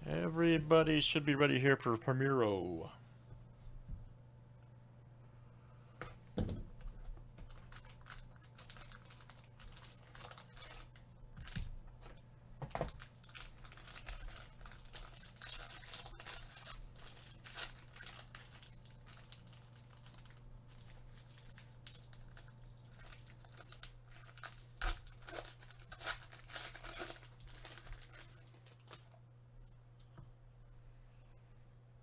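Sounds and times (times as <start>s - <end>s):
low steady hum: 0.0s - 32.0s
plastic wrapping crinkling: 7.4s - 12.1s, 12.7s - 29.2s.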